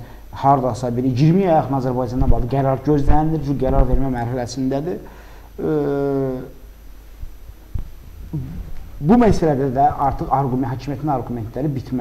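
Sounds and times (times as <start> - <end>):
low electrical hum: 0.0 - 12.0
short vocal sound: 8.0 - 9.0
person speaking: 8.2 - 12.0.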